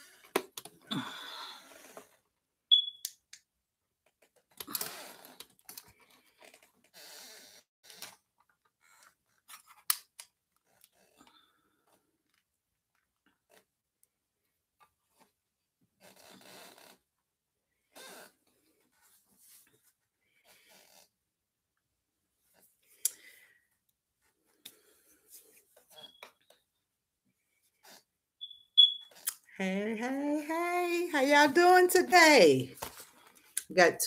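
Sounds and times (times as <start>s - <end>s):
loud high-pitched beep: 2.7s - 3.1s, 28.4s - 29.1s.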